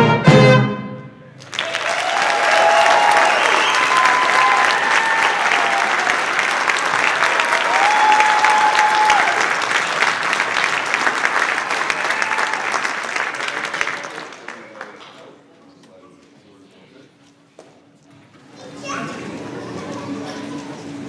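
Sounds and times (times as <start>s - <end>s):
jazz band playing: 0.0s - 1.2s
audience applauding: 1.4s - 15.4s
drawn-out cheers: 1.5s - 10.2s, 11.2s - 13.1s.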